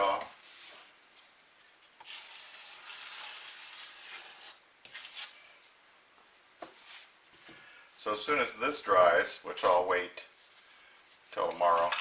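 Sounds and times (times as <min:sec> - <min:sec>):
soft handling sounds: 0:00.0 - 0:02.3, 0:04.9 - 0:07.7, 0:10.2 - 0:12.0
metal scraper on wood: 0:02.0 - 0:05.4.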